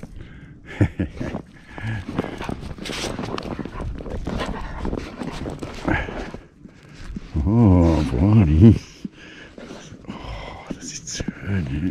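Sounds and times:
person laughing: 0.6 - 2.4
snow crunching: 0.8 - 10.0.

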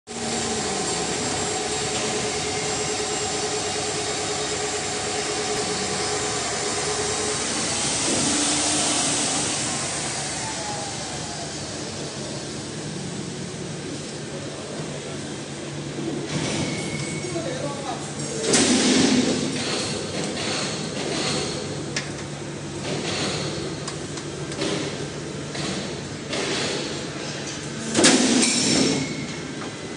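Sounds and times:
machine running with motor hum: 0.1 - 29.9.

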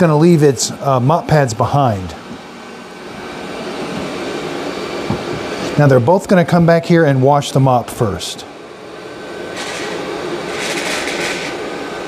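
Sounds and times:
robot vacuum whirring: 9.6 - 11.6.

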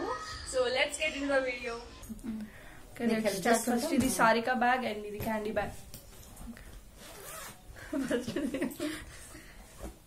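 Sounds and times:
zipper rasp: 7.0 - 7.6
women laughing: 7.8 - 9.2.

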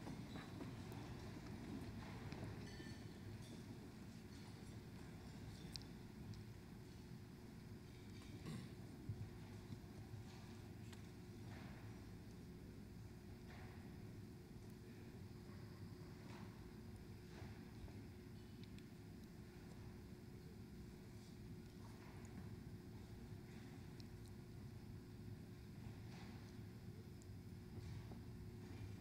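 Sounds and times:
low steady hum: 0.0 - 29.0.

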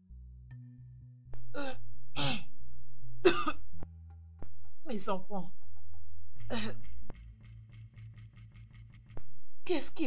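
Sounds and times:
soft background music: 0.0 - 10.0
person coughing: 3.2 - 3.6.

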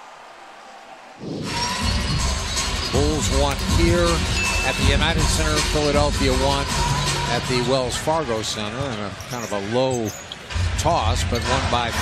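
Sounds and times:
arena crowd sound: 0.0 - 12.0.

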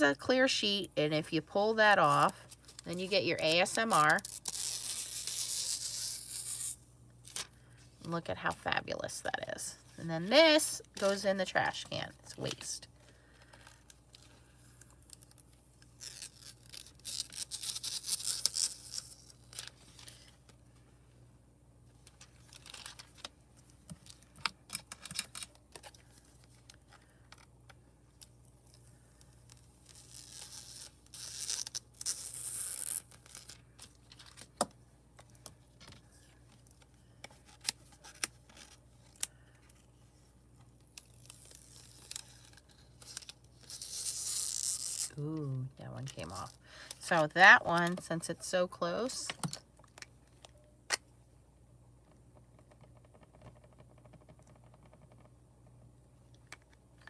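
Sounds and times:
plastic sheet peeling crackly: 13.5 - 20.4, 40.7 - 46.6.

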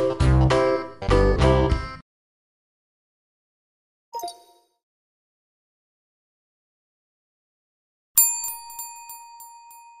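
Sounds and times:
small bell ringing: 8.2 - 10.0.

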